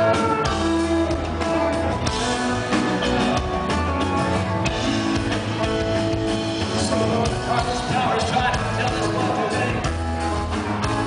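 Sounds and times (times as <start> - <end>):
bass notes: 0.0 - 11.0
drum kit: 0.0 - 11.0
electric guitar: 0.0 - 11.0.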